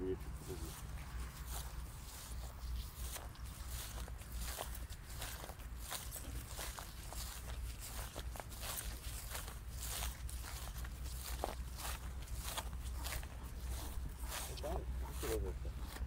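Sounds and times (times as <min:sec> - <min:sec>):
footsteps swishing through long grass: 0:00.0 - 0:16.0.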